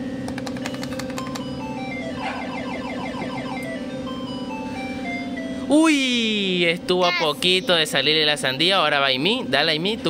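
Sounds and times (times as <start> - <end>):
slot machine buzzing drone: 0.0 - 10.0
quick run of clicks: 0.3 - 1.5.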